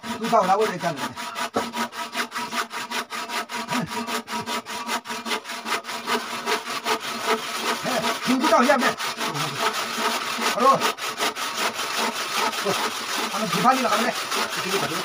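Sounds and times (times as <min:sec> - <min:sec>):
hand saw cutting wood: 0:00.0 - 0:15.0.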